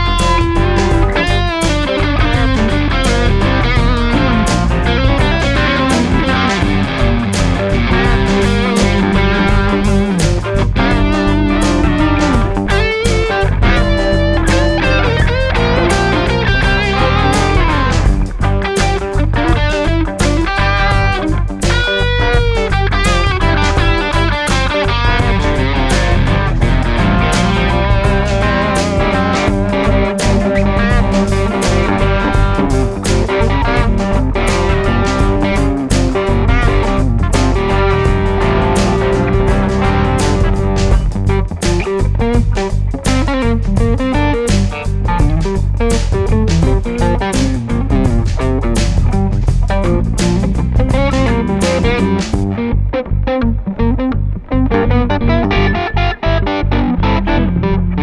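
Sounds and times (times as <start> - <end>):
electric guitar lead with bent notes: 0.0 - 58.0
repeating electric guitar rhythm: 0.0 - 58.0.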